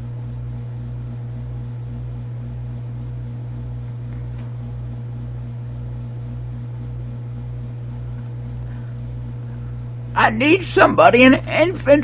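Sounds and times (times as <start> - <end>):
throbbing electrical hum: 0.0 - 12.0.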